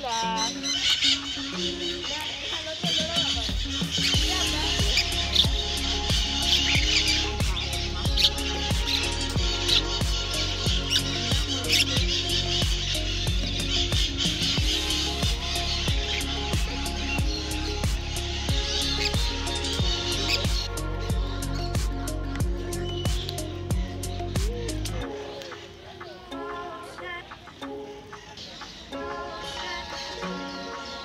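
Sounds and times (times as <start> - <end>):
birds chirping and squawking: 0.0 - 31.0
pop music with steady beat: 0.0 - 31.0.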